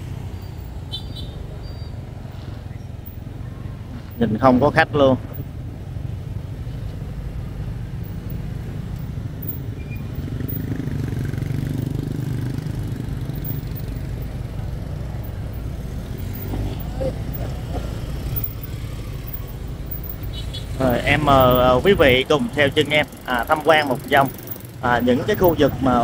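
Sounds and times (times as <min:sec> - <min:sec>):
motorbike engines: 0:00.0 - 0:26.0
motorbike passing close: 0:00.0 - 0:26.0
street traffic hum: 0:00.0 - 0:26.0.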